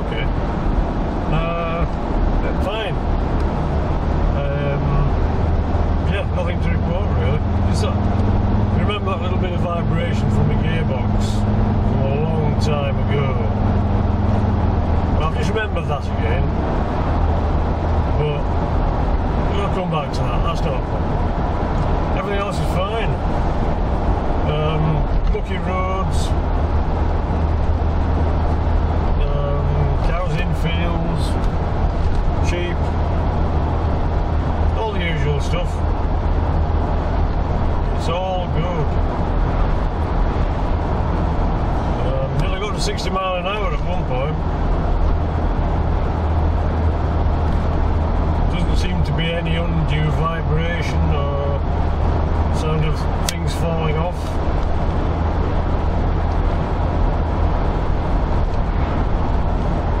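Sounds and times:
voice: 0.0s - 0.3s, 1.3s - 3.0s, 4.4s - 5.3s, 6.0s - 8.0s, 8.8s - 13.6s, 15.2s - 16.6s, 18.2s - 18.5s, 19.4s - 20.9s, 22.2s - 23.2s, 24.4s - 26.4s, 29.2s - 31.4s, 32.4s - 32.9s, 34.8s - 35.8s, 37.9s - 39.0s, 42.0s - 44.4s, 48.5s - 51.6s, 52.5s - 54.4s
car engine and tyre drone: 0.0s - 60.0s.

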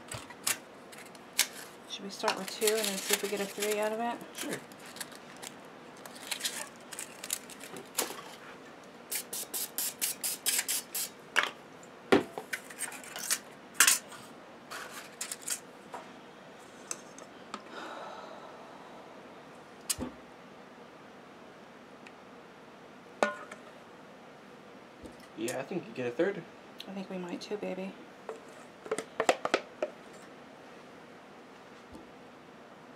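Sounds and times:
paper liners crinkling: 0.4s - 8.4s.

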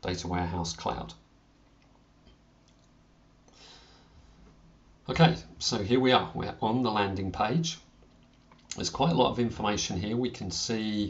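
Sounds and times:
steady low hum: 0.0s - 11.0s
person speaking: 5.0s - 8.0s, 8.7s - 11.0s.

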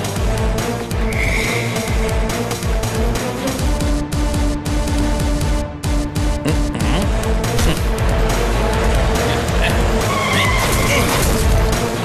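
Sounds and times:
background music: 0.0s - 12.0s
tyre skid screech: 10.0s - 11.2s.

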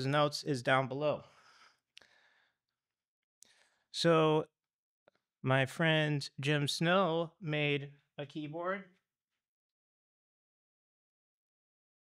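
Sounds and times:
man speaking: 0.0s - 1.3s, 4.0s - 4.5s, 5.4s - 9.0s
man breathing: 1.2s - 2.8s, 3.4s - 3.9s.

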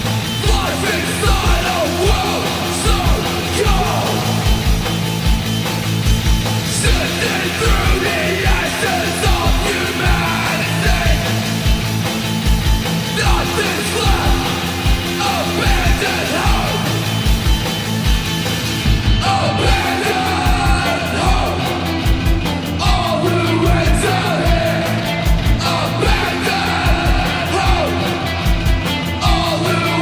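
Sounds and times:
driving kick drum: 0.0s - 29.5s
punk band with shouted vocals: 0.0s - 30.0s.

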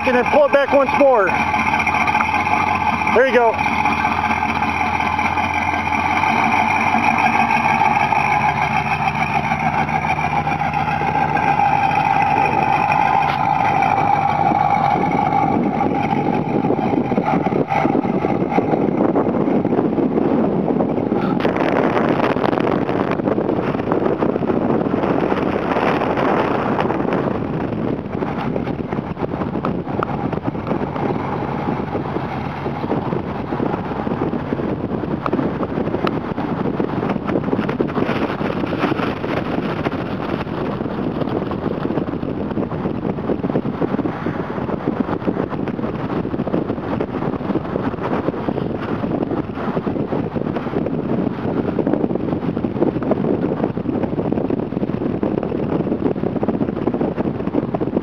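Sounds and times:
car engine driving off: 0.0s - 58.0s
wind on microphone: 0.0s - 58.0s.

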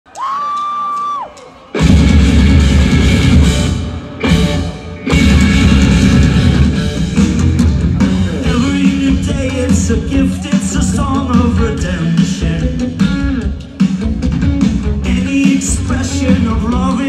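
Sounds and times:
rock band playing live: 1.5s - 17.0s.

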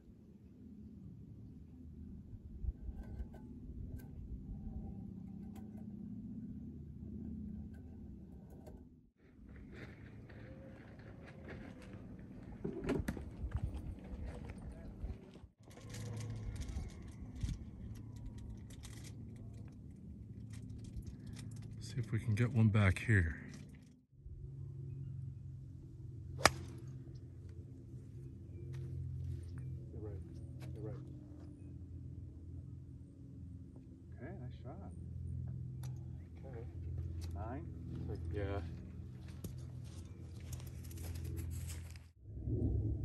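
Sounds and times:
wind rumble on microphone: 1.3s - 8.8s, 9.6s - 21.8s, 39.9s - 43.0s.

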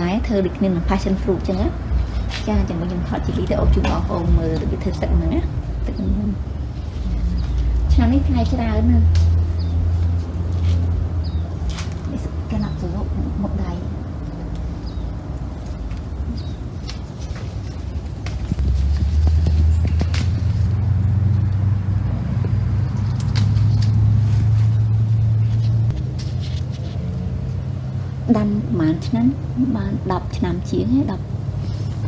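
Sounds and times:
steady low rumble: 0.0s - 32.0s
leaves and twigs snapping: 9.0s - 11.0s, 11.6s - 12.3s, 15.6s - 21.6s.

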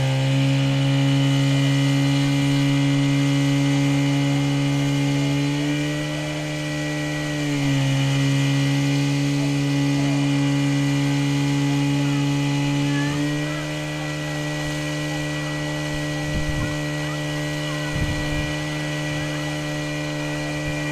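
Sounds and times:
fire pump engine running: 0.0s - 20.9s.

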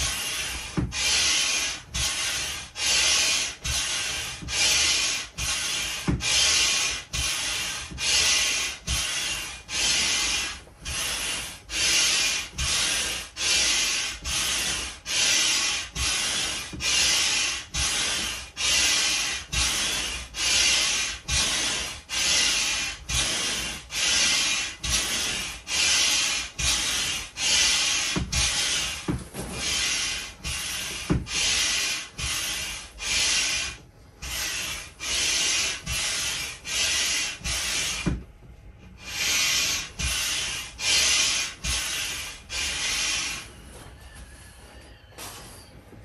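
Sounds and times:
hand air pump strokes: 0.0s - 45.6s.

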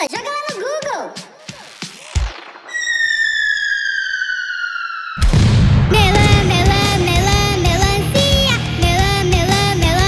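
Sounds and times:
falling bomb whistle: 2.6s - 6.3s
loud explosion: 4.7s - 8.2s.

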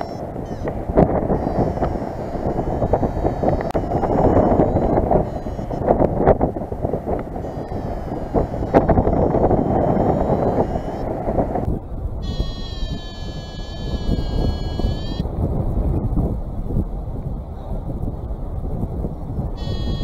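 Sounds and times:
variometer high electronic tone: 0.0s - 15.2s, 19.6s - 20.0s
wind rushing over microphone: 0.0s - 20.0s.

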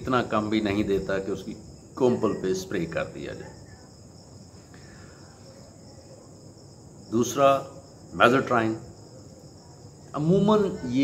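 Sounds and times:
insect chirring: 0.0s - 11.0s
low background hiss: 0.0s - 11.0s.

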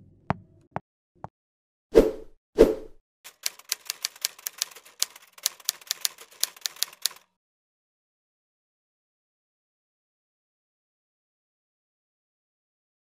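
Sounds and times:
typewriter-style key clicks: 3.3s - 7.3s.

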